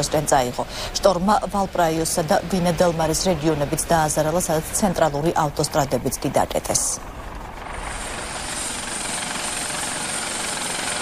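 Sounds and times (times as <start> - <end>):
rushing engine noise: 0.0 - 11.0.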